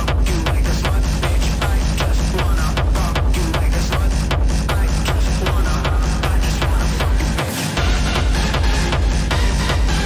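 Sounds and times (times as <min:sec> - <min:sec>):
hard techno music: 0:00.0 - 0:10.0.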